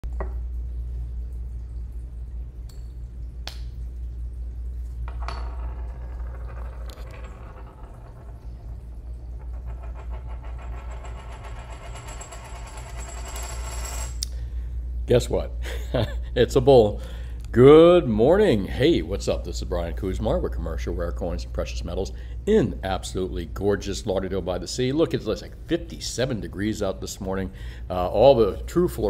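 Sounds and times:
low electrical hum: 0.0 - 29.0.

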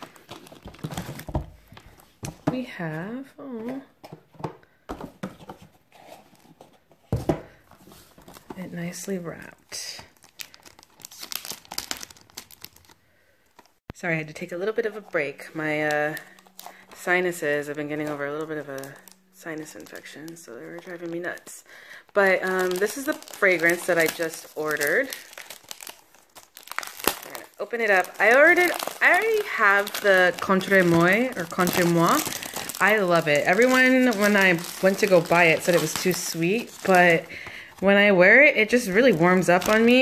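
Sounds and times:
gift wrapping crinkling: 0.0 - 2.4, 5.9 - 13.8, 14.4 - 40.0.

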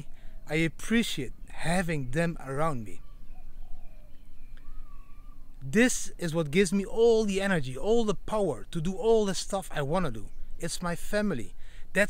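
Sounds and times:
faint bird calls: 0.0 - 5.9, 9.0 - 12.0.

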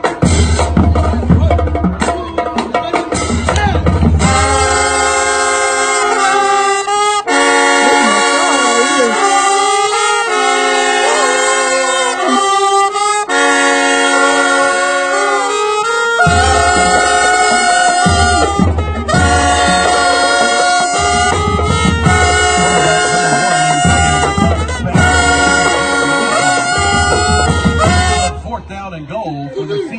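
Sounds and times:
drums playing: 0.0 - 6.7, 7.8 - 12.4, 16.2 - 29.9
brass chords: 0.0 - 29.2.

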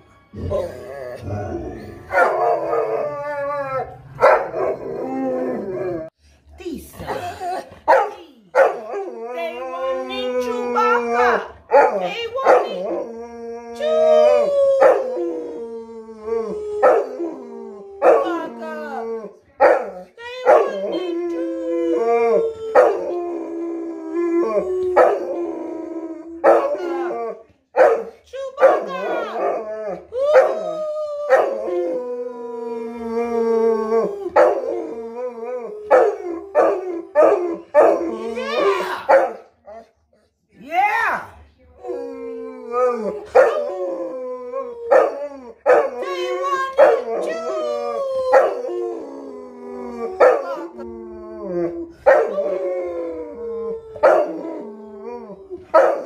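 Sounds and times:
dog howling: 0.4 - 6.2, 7.1 - 27.4, 28.6 - 39.8, 41.8 - 56.0
woman howling: 8.9 - 19.3, 20.3 - 27.4, 28.7 - 37.2, 38.0 - 39.1, 41.0 - 55.7.

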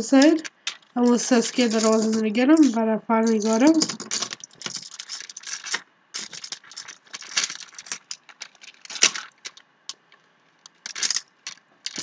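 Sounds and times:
metal chains and tags jingling: 0.0 - 9.3.

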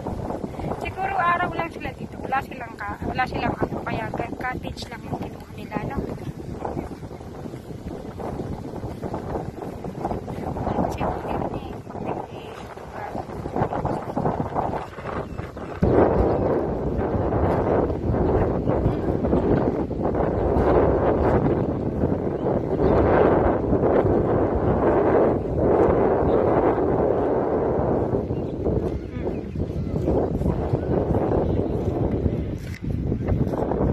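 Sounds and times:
wind buffeting microphone: 0.0 - 33.9.

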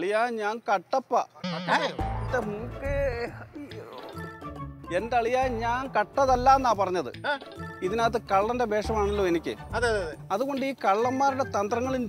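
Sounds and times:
music with deep bass: 2.0 - 3.4.

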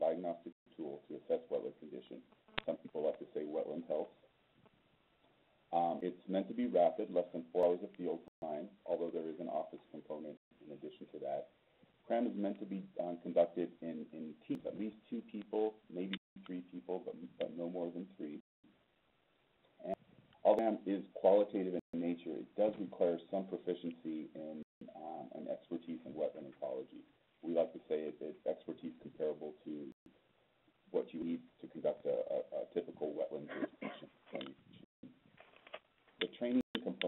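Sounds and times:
man speaking over phone line: 0.0 - 4.1, 5.8 - 11.4, 12.1 - 18.4, 19.8 - 30.0, 31.0 - 33.6.

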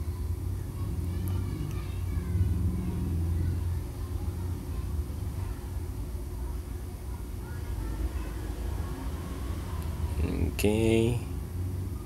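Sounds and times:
faint voices: 0.0 - 12.0
low background rumble: 0.0 - 12.0.

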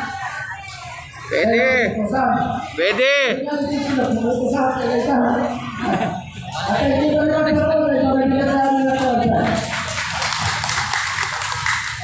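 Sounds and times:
crowd clapping: 9.0 - 12.0.

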